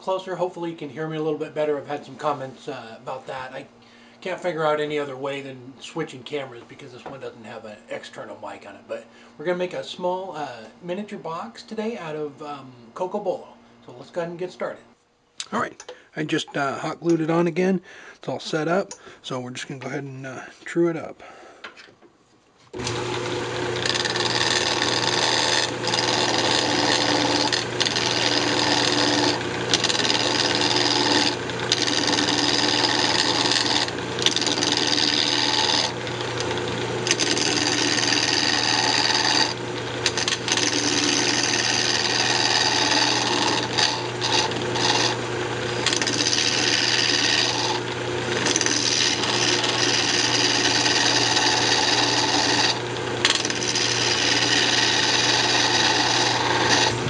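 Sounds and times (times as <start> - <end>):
gouge scraping spinning wood: 22.7 - 57.0
lathe motor hum: 22.8 - 57.0.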